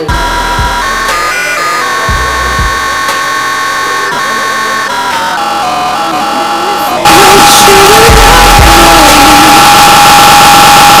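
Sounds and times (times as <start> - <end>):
distorted high tone: 0.0 - 11.0
loud noise: 0.0 - 11.0.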